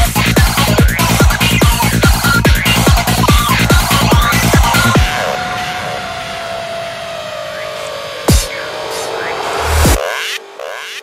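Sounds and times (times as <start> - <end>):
pounding kick drum: 0.0 - 5.1
white-noise sweep: 0.0 - 11.0
held synth tone: 0.6 - 11.0.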